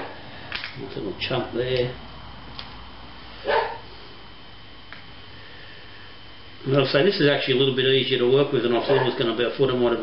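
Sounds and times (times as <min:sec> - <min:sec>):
dog bark: 0:03.4 - 0:03.8, 0:08.9 - 0:09.2.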